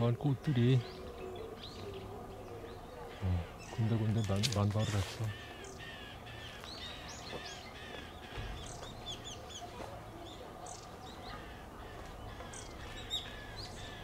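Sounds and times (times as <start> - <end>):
small birds chirping: 0.0 - 14.0.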